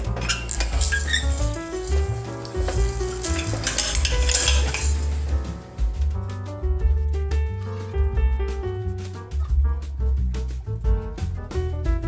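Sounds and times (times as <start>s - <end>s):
rough scraping rustle in roller press: 0.0s - 5.8s
background music with melody and bass: 0.0s - 12.0s.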